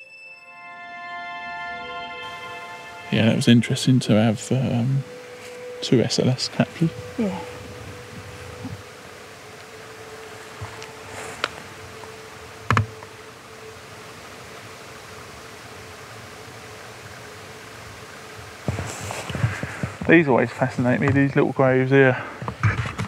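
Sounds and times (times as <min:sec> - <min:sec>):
faint steady whine: 0:00.3 - 0:23.0
steady recording hiss: 0:00.7 - 0:23.0
rustling in long grass: 0:02.2 - 0:21.4.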